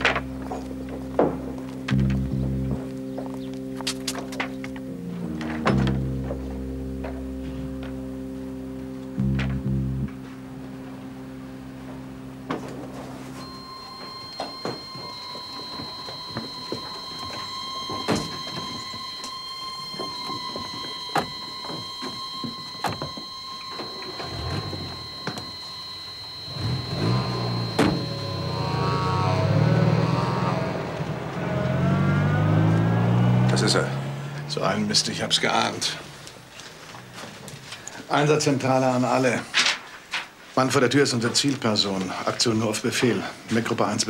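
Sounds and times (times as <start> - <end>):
low wavering engine: 0.0 - 37.8
high held suspense music tone: 0.0 - 38.2.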